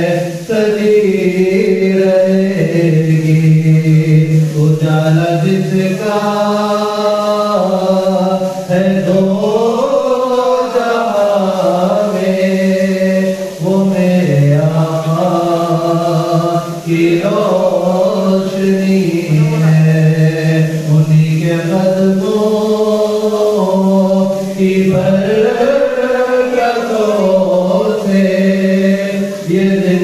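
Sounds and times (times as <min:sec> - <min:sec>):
man chanting devotional verse: 0:00.0 - 0:30.0.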